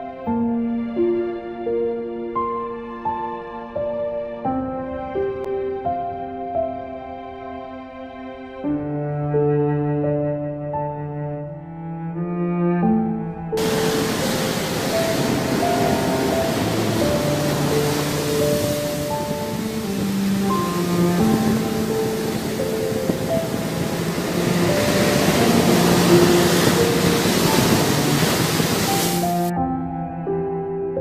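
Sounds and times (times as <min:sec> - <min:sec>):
slow background music: 0:00.0 - 0:31.0
sea waves breaking on shore: 0:13.6 - 0:29.5.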